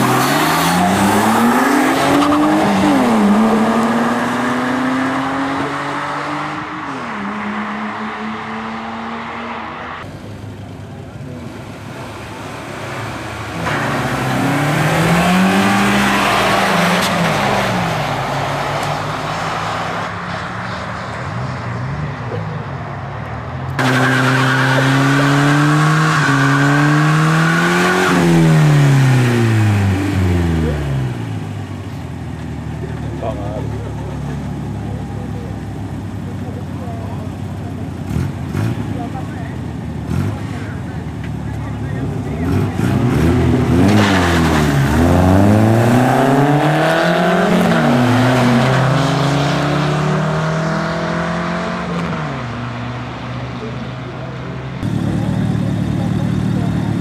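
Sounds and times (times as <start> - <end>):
car engine revving: 0.0 - 57.0
cars accelerating hard: 0.0 - 57.0.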